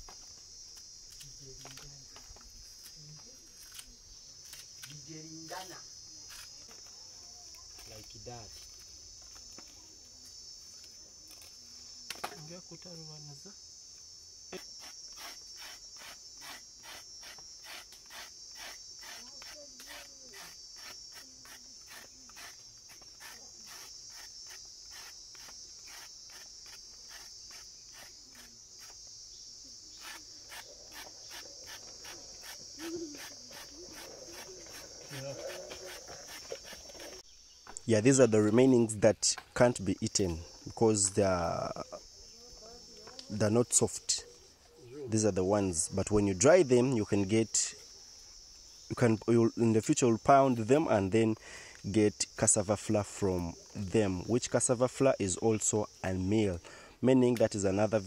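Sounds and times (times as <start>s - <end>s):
insects chirring: 0.0s - 58.0s
knife scraping root skin: 14.5s - 29.0s.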